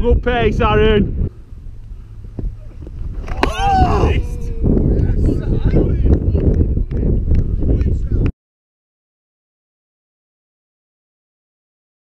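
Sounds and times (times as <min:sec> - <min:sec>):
wind buffeting microphone: 0:00.0 - 0:08.3.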